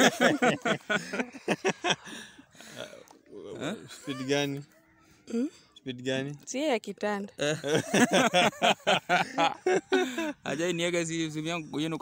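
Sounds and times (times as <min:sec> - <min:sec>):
breathy laughter: 0:00.0 - 0:03.0, 0:07.5 - 0:10.4.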